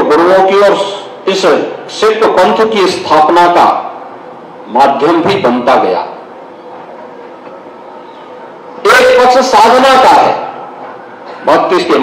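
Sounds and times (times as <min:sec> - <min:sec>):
faint hum: 0:00.0 - 0:12.0
microphone hiss: 0:00.0 - 0:12.0.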